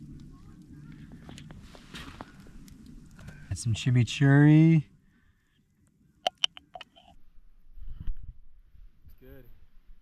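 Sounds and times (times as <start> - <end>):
knife tapping glass jar: 6.3 - 7.0.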